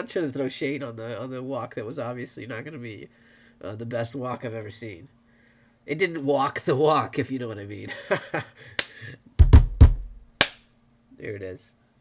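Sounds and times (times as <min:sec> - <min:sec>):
rimshot drum hits: 0:09.4 - 0:10.3.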